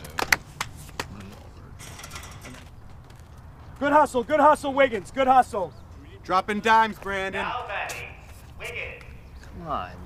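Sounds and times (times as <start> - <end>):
low steady background noise: 0.0 - 10.0.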